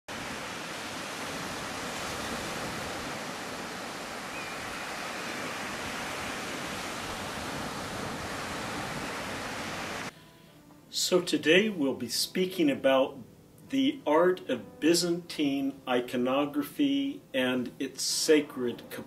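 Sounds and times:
waves breaking on shore: 0:00.1 - 0:10.1.

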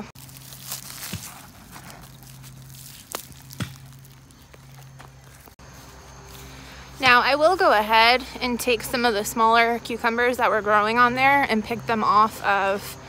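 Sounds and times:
dry vegetation rustling: 0:00.0 - 0:07.1.

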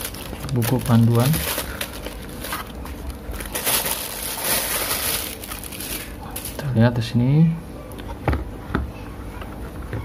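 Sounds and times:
plastic bag crinkling: 0:00.0 - 0:06.8.

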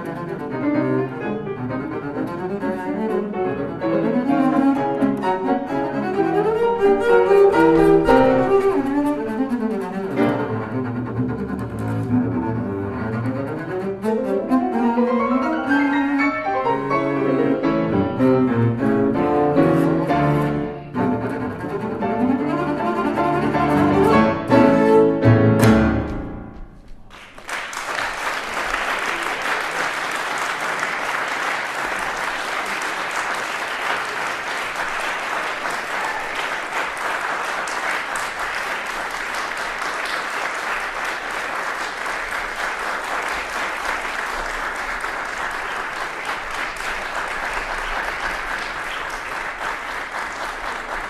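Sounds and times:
audience applauding: 0:04.2 - 0:11.2, 0:27.0 - 0:51.0.

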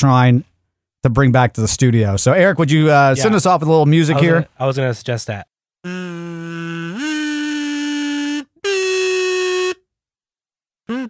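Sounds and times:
man humming a tune: 0:05.9 - 0:09.8.

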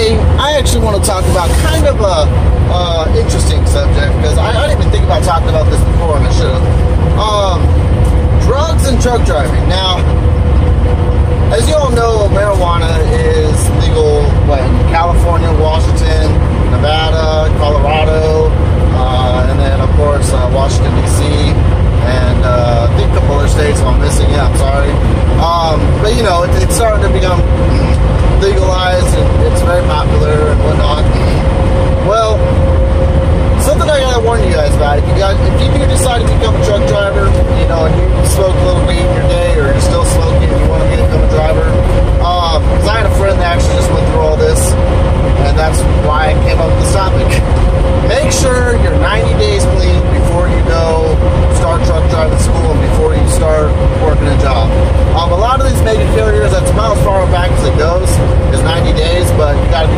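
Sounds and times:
man talking: 0:00.0 - 0:10.2, 0:11.4 - 0:32.6, 0:33.5 - 0:59.9
truck engine and road drone: 0:00.0 - 0:59.9.

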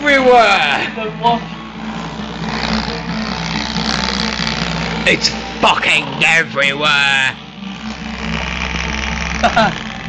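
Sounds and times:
electric fan whirring: 0:00.0 - 0:10.0.

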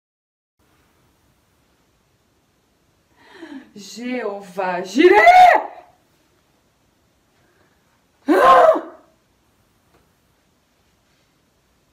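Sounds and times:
woman shrieking: 0:05.0 - 0:05.9, 0:08.2 - 0:09.1.

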